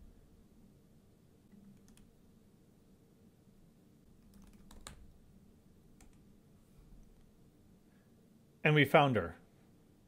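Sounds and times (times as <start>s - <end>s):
faint keyboard keystrokes: 1.5s - 2.1s, 4.2s - 5.1s.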